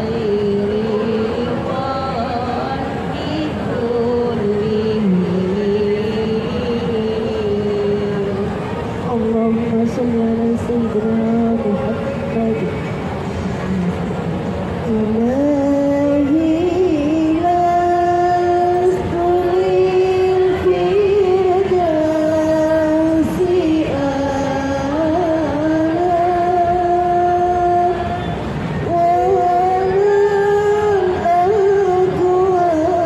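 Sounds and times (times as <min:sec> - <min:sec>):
woman chanting through loudspeaker: 0:00.0 - 0:14.2, 0:14.8 - 0:33.0.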